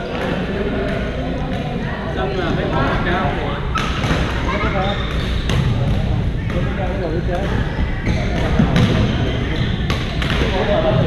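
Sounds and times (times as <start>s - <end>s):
players' voices: 0.0s - 11.0s.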